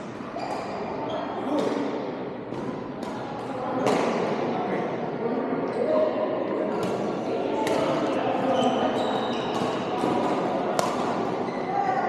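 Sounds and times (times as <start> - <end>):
echoing chatter of players: 0.0 - 12.0
court shoes squeaking: 0.3 - 1.8, 6.7 - 12.0
rackets hitting shuttlecock: 2.5 - 4.3, 9.5 - 11.2.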